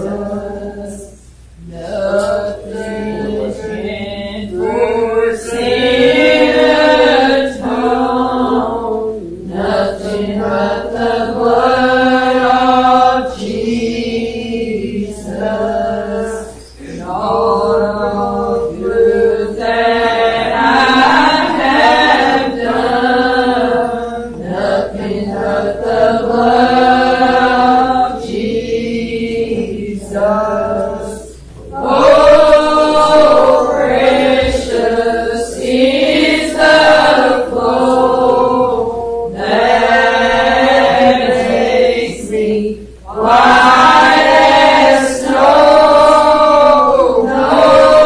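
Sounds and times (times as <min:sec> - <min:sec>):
congregation singing a hymn: 0:00.0 - 0:48.0.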